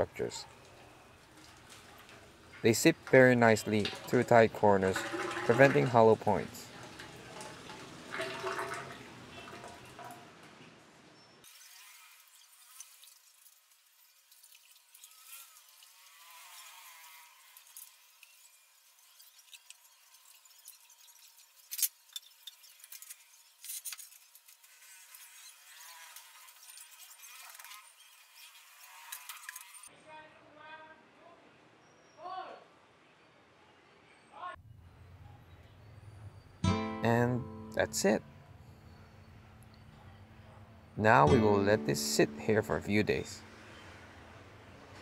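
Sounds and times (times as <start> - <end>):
wet concrete sloshing and dripping: 0.6 - 10.4.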